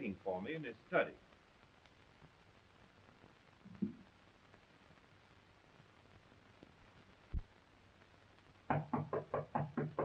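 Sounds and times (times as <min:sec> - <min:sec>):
knuckles knocking on wooden door: 0:08.7 - 0:10.0.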